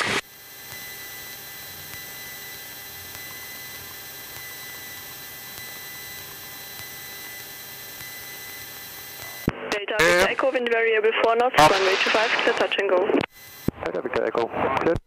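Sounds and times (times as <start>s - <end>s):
electrical hum: 0.0s - 14.9s
intercom hiss: 9.2s - 10.6s, 11.2s - 14.9s.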